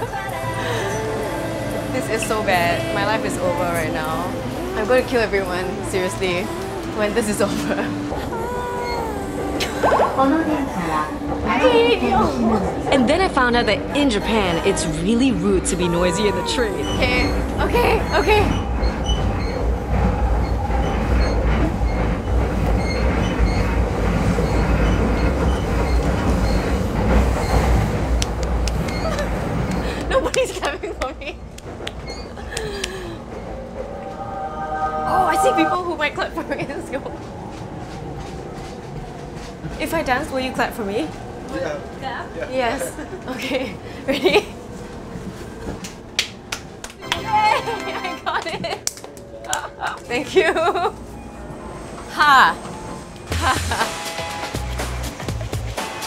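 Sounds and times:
train wheels rumbling: 0.0s - 9.7s, 10.3s - 56.0s.

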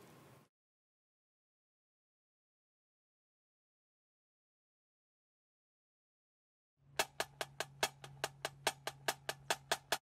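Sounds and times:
sharp percussion clicks: 7.0s - 10.0s.

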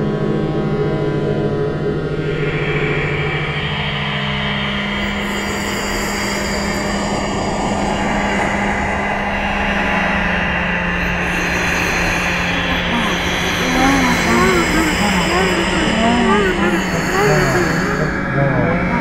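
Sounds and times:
steady low drone: 7.1s - 19.0s
rising and falling pitch glides: 12.4s - 19.0s.

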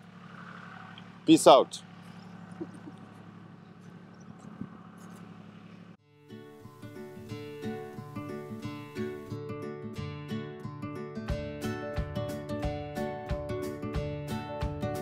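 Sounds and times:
distant tractor engine hum: 0.0s - 9.4s
plucked acoustic guitar music: 6.2s - 15.0s.

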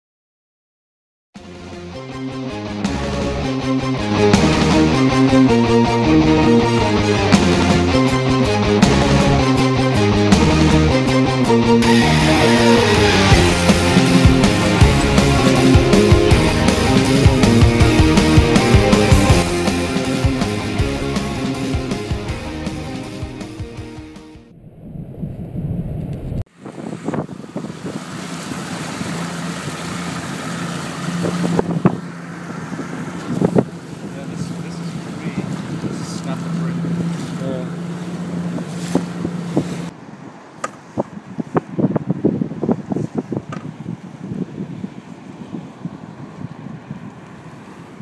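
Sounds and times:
outboard motor running: 1.6s - 11.2s, 11.8s - 23.6s, 26.6s - 39.9s
wind rushing over microphone: 24.5s - 29.7s, 31.1s - 37.3s, 38.0s - 48.0s
water splashing: 24.6s - 39.9s
sharp knocks against hull: 40.6s - 40.8s.

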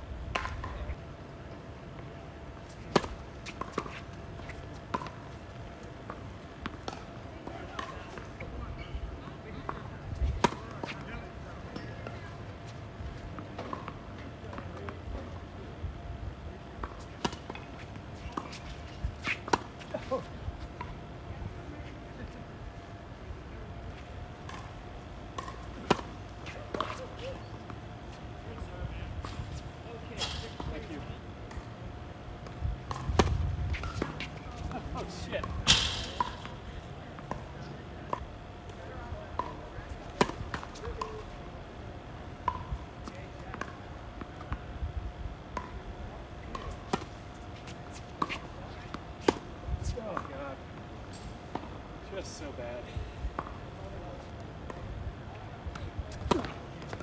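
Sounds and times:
tennis ball bouncing: 0.3s - 0.8s, 2.9s - 5.5s, 16.8s - 19.9s, 24.4s - 27.8s, 32.4s - 34.8s, 37.2s - 37.5s, 39.4s - 41.2s, 42.4s - 42.7s, 43.5s - 44.6s, 45.5s - 45.8s, 46.4s - 49.5s, 53.4s - 53.6s, 55.7s - 57.0s
racket striking tennis ball: 25.3s - 27.0s, 32.9s - 34.7s, 35.4s - 36.6s, 56.1s - 57.0s.

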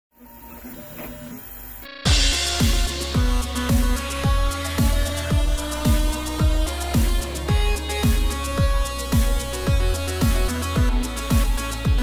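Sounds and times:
printer stepper motors whining: 0.2s - 2.3s.

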